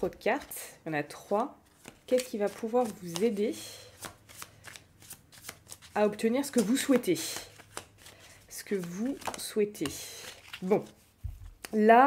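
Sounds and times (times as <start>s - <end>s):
cards being shuffled: 1.6s - 11.8s.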